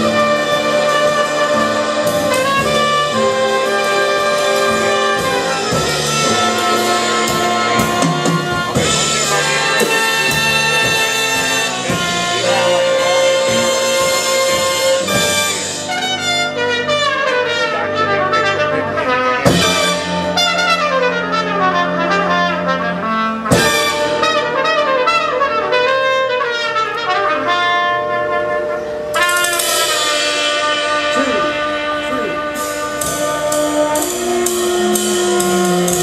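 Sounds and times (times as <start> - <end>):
jazz big band playing: 0.0 - 36.0.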